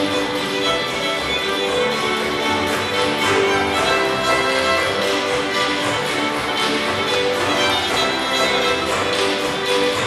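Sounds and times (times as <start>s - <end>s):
folk fiddle orchestra playing: 0.0s - 10.0s
guitars: 0.0s - 10.0s
lead fiddle: 0.0s - 10.0s.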